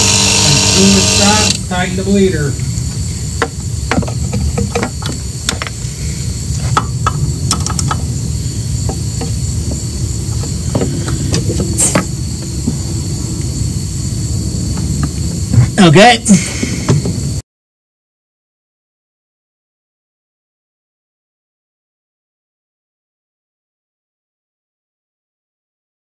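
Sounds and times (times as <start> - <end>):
low rumble: 0.0 - 15.8.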